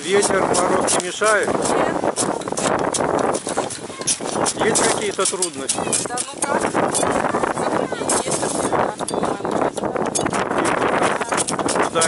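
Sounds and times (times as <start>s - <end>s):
tools scraping packed snow: 0.0s - 8.8s.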